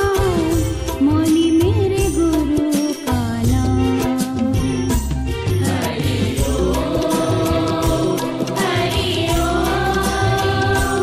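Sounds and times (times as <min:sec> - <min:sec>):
instrumental accompaniment: 0:00.0 - 0:11.0.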